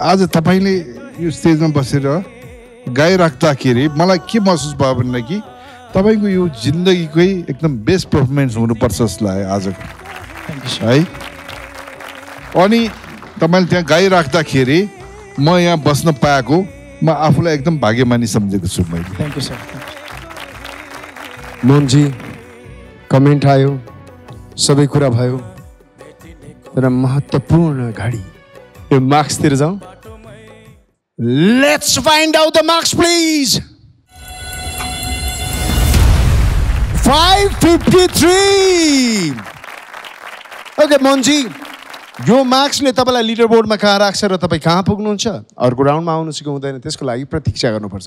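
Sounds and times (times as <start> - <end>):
faint background music: 0.0 - 33.7
hands clapping: 9.6 - 14.3, 18.8 - 22.6, 37.0 - 43.0
horn-like synth chord: 34.1 - 38.7
low rumble: 35.2 - 38.0.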